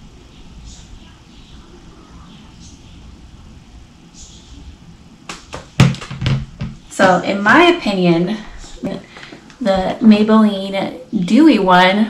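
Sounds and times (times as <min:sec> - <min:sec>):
handling thumps and knocks: 0:05.3 - 0:07.2.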